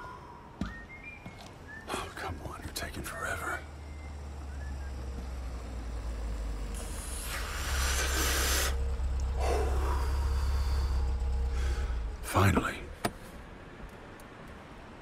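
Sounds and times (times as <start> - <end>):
vehicle engine rumble arriving: 1.9 - 15.0
hissing rush: 6.6 - 12.9.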